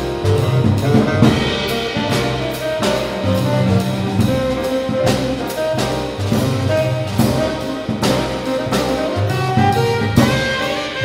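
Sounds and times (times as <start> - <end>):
saxophone melody: 0.0 - 11.0
upright bass notes: 0.0 - 11.0.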